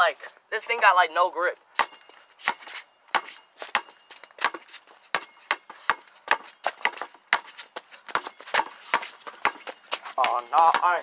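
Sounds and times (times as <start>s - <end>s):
basketball dribbling on concrete: 1.8s - 11.0s.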